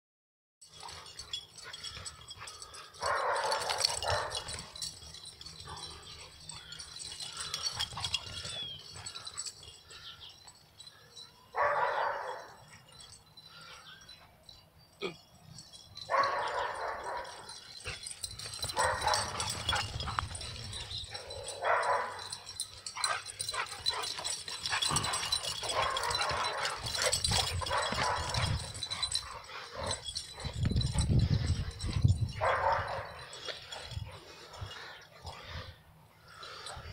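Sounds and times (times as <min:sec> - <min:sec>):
dogs barking while play-fighting: 0:00.7 - 0:10.0, 0:11.6 - 0:13.1, 0:16.0 - 0:35.6.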